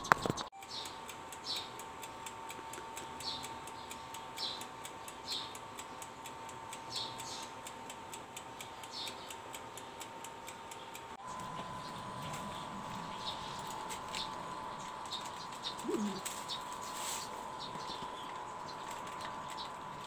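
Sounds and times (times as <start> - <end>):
faint regular ticking: 0.0 - 20.0
oven humming: 0.0 - 20.0.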